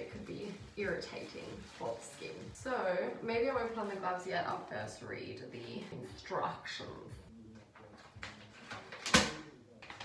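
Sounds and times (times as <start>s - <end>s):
paper leaflet rustling: 0.0s - 2.6s, 7.7s - 10.0s.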